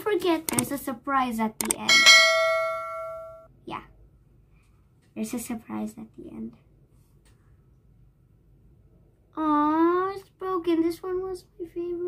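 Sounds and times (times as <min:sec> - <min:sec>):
bright bell chime: 0:01.9 - 0:03.5.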